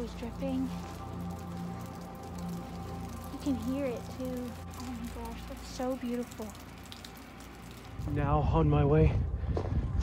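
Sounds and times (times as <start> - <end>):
meltwater dripping from icicles: 0.0 - 8.8.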